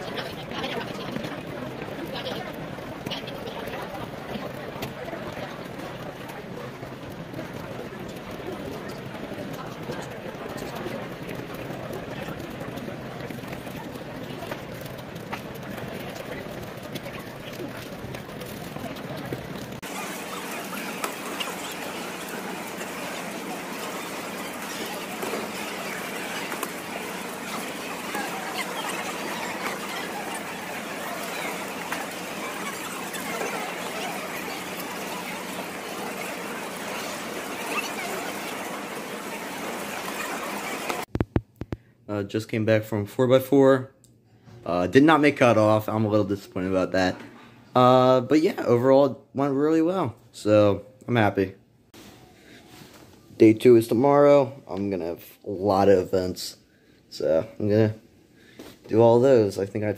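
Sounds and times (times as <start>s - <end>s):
hubbub of many voices: 0.0s - 41.1s.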